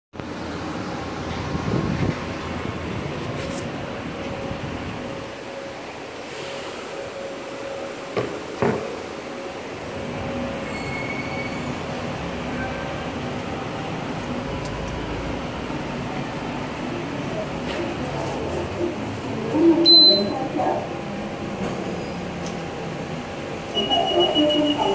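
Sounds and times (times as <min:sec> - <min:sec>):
metro station background noise: 0:00.2 - 0:24.9.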